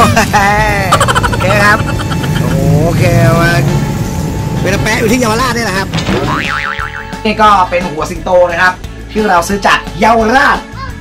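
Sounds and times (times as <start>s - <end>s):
traffic engines rumbling: 0.0s - 7.7s
child's wordless voice: 10.7s - 11.0s.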